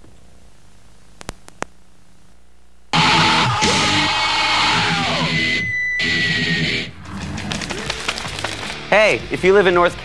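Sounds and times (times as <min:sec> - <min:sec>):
distorted electric guitar: 0:02.9 - 0:09.4
heavy metal music: 0:03.0 - 0:10.0.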